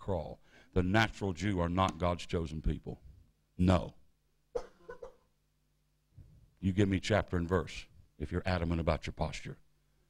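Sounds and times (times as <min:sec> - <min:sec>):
person coughing: 0:04.5 - 0:05.3.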